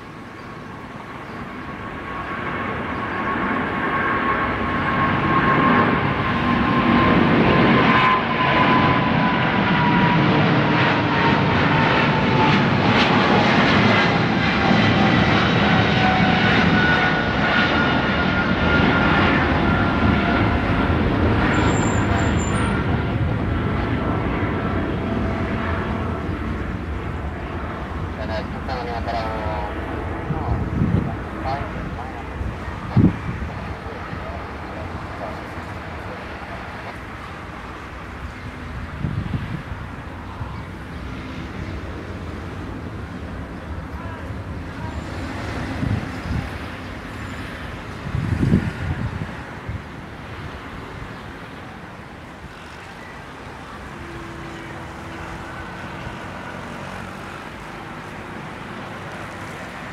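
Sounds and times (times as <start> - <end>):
jet airliner engines at takeoff: 0.0 - 59.9
high fan whine: 25.2 - 52.6.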